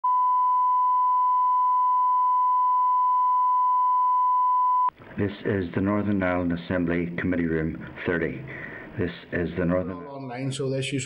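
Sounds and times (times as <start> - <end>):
steady test tone: 0.0 - 4.9.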